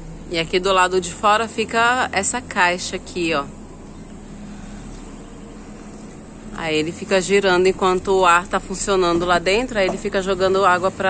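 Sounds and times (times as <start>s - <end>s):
air conditioner fan humming: 0.0s - 11.0s.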